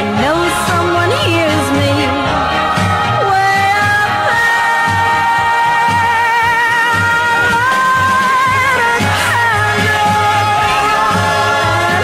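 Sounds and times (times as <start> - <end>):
bass line: 0.0 - 12.0.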